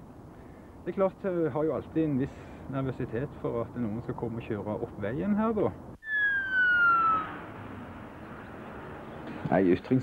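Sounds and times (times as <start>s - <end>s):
police siren wail: 6.0s - 7.6s.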